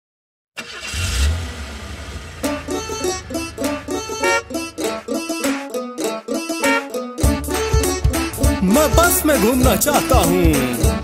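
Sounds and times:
bus engine revving and rumbling: 0.6s - 5.2s.

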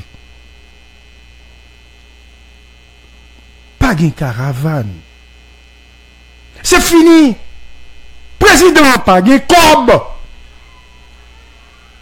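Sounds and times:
electrical mains hum: 0.0s - 12.0s
faint high whine: 0.0s - 12.0s.

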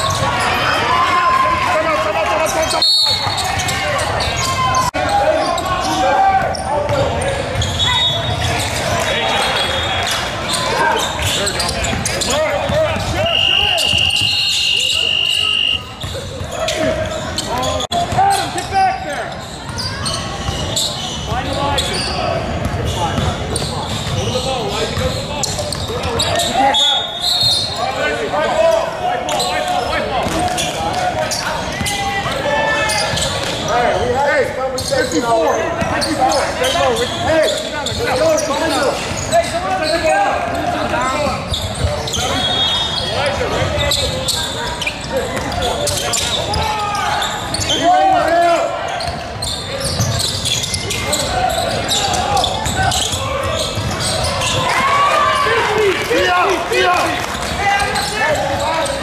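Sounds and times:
voices calling out: 0.0s - 59.0s
referee's whistle blast: 13.0s - 16.0s, 26.6s - 27.8s, 42.2s - 43.2s.

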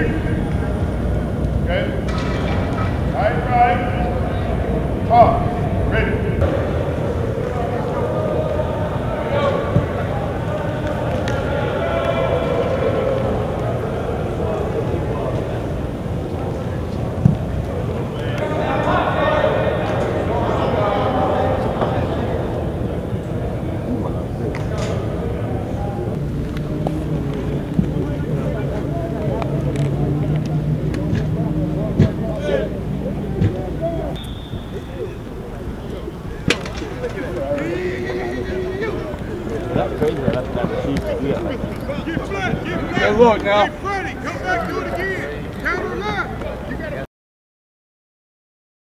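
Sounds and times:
low mechanical hum: 0.0s - 47.0s
overlapping voices calling out: 0.0s - 47.1s.

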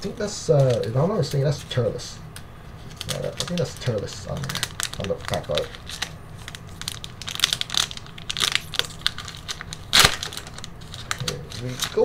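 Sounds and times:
foil wrapper tearing and crinkling: 2.8s - 12.0s.

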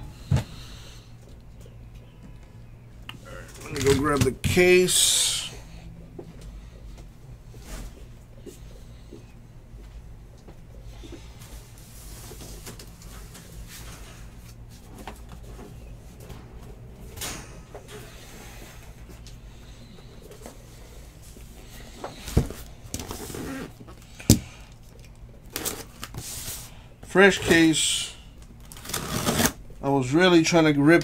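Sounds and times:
steady low hum: 0.0s - 31.0s.

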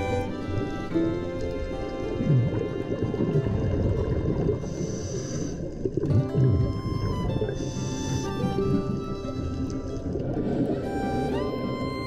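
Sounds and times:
background music of held tones: 0.0s - 5.2s, 5.9s - 12.0s.

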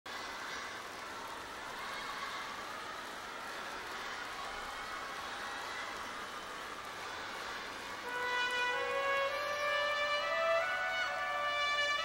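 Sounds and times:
crowd voices and clapping: 0.1s - 12.0s.

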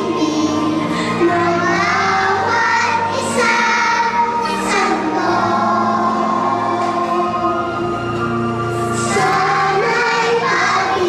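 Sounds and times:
music: 0.0s - 11.0s
young children singing: 0.0s - 11.0s.

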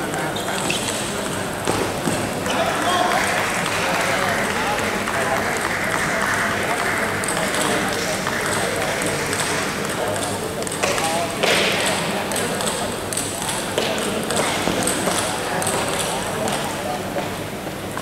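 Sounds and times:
table tennis balls ticking: 0.0s - 2.2s, 5.0s - 16.6s
chatter of voices: 0.0s - 18.0s.

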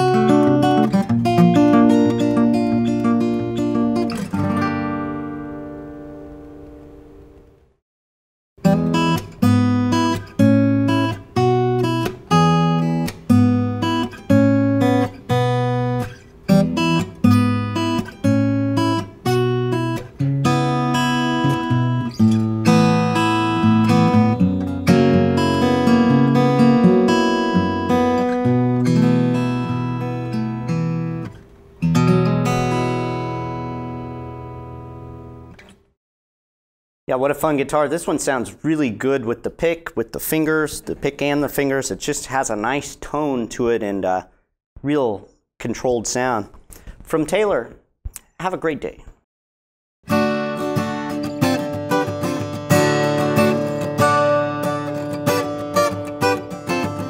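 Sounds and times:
fingerpicked acoustic guitar: 0.0s - 7.6s, 8.6s - 35.8s, 50.1s - 57.0s.

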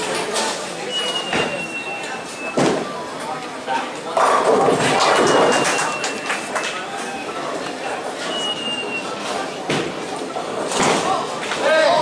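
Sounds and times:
people's voices: 0.0s - 12.0s
bowling ball rolling down lane: 4.1s - 6.6s.

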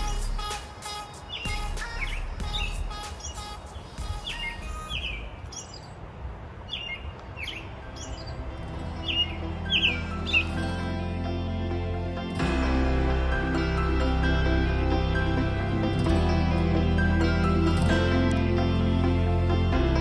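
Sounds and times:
small songbirds chirping: 0.0s - 11.4s
soft background music: 7.4s - 20.0s.

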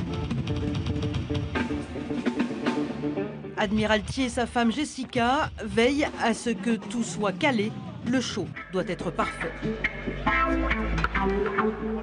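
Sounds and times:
electric guitar: 0.0s - 3.6s, 7.7s - 12.0s
bass guitar: 0.0s - 12.0s.

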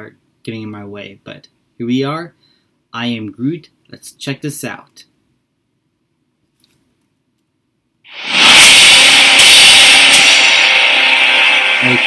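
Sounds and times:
spaceship rushing noise: 8.1s - 12.0s.

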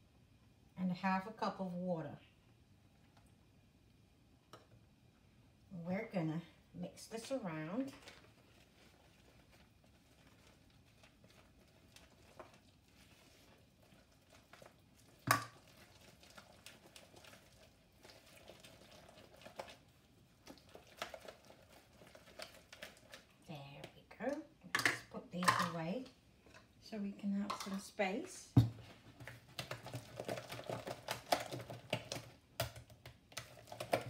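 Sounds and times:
batter stirring in plastic bowl: 6.8s - 34.0s.

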